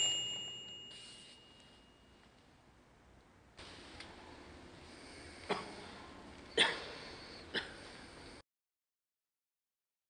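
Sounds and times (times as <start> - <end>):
sharp metallic strike ringing: 0.0 - 1.5
room ambience hiss: 0.0 - 8.4.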